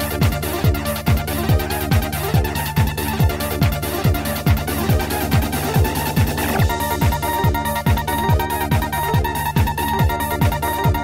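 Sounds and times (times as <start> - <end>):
synth bass tones: 0.0 - 11.0
trance kick drum: 0.0 - 11.0.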